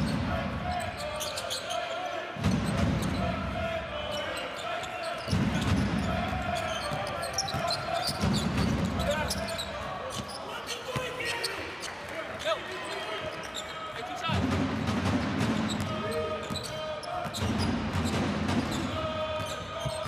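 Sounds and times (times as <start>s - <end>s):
crowd voices: 0.0s - 20.0s
sneaker squeaks: 0.1s - 3.3s, 4.1s - 14.2s, 15.5s - 20.0s.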